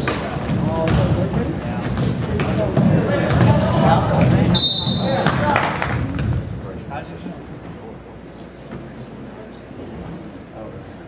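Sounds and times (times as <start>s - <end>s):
basketball bouncing: 0.0s - 5.5s
sneakers squeaking on hardwood: 0.0s - 5.7s.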